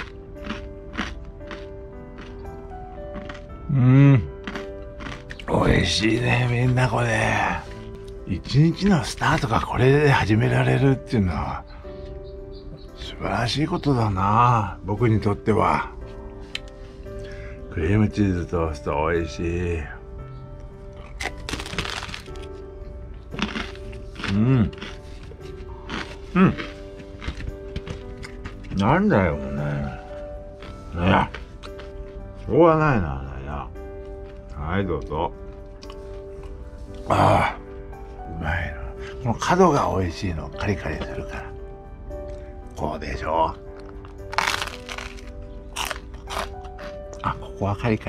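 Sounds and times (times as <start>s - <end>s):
biting and crunching toast: 0.0s - 7.2s, 20.6s - 28.8s, 30.5s - 32.0s, 43.5s - 47.5s
background music: 0.0s - 48.0s
short crunches: 21.0s - 22.5s, 43.7s - 47.0s.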